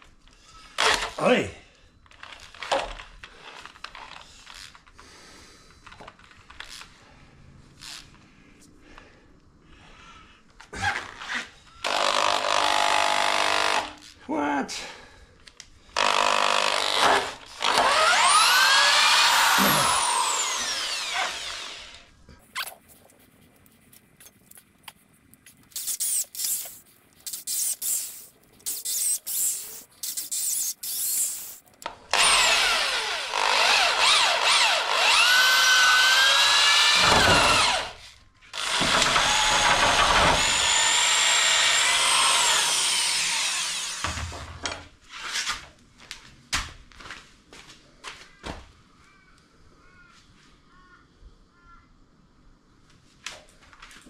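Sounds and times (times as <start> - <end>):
electric drill boring into wood: 0.8 - 1.2, 11.8 - 14.1, 16.0 - 22.1, 27.4 - 44.5.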